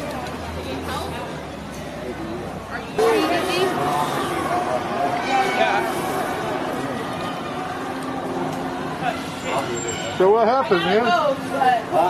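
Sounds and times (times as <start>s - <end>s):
low traffic hum: 0.0s - 12.0s.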